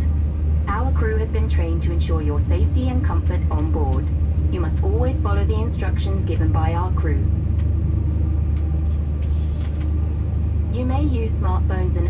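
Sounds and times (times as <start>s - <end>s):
airplane cabin hum: 0.0s - 12.0s
narration voice: 10.8s - 12.0s.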